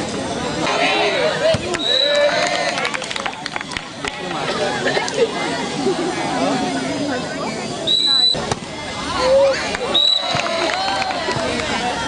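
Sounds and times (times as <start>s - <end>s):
boys chattering and calling out: 3.9s - 12.0s.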